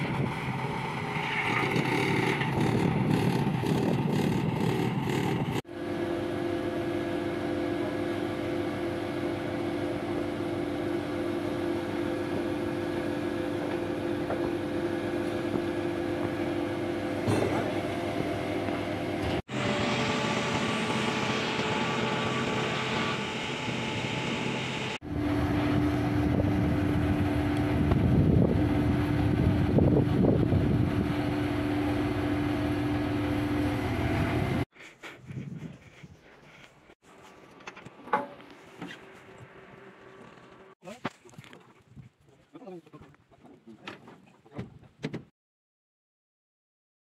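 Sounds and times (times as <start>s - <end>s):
crane engine running: 0.0s - 34.6s, 37.3s - 40.8s
engine whine: 0.0s - 34.7s, 37.0s - 40.8s.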